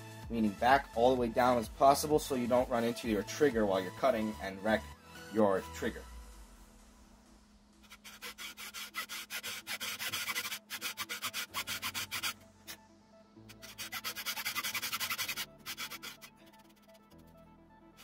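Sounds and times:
faint background music: 0:00.0 - 0:18.0
hand saw cutting wood: 0:07.8 - 0:12.4, 0:13.5 - 0:17.2.

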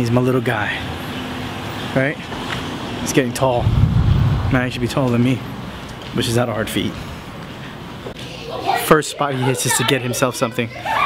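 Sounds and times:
man speaking: 0:04.5 - 0:05.5.

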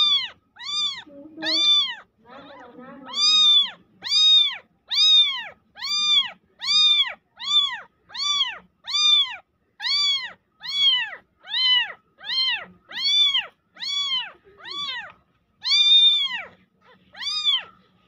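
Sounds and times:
kitten meowing: 0:00.0 - 0:17.9.

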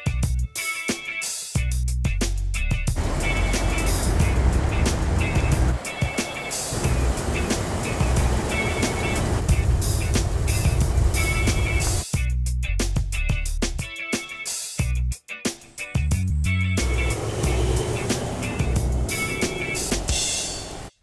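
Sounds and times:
background music with steady beat: 0:00.0 - 0:21.0
car engine driving by: 0:03.0 - 0:12.0, 0:16.8 - 0:20.9.

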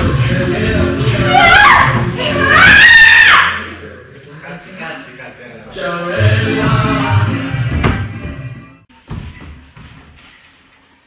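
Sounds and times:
woman screaming: 0:01.3 - 0:03.6.

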